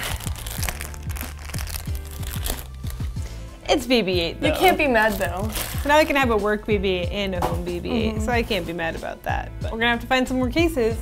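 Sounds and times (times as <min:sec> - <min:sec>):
foil packaging crinkling: 0:00.0 - 0:03.2, 0:04.6 - 0:06.2
background music: 0:00.0 - 0:11.0.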